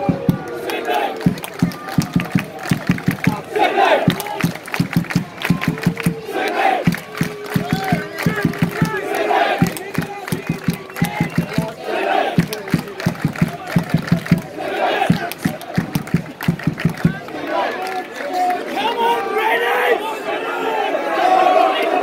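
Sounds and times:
crowd shouting: 0.0s - 22.0s
sharp hand claps: 0.1s - 18.6s.

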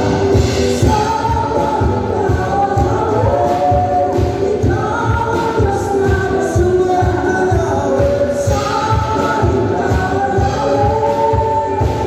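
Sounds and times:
choir singing gospel: 0.0s - 12.0s.

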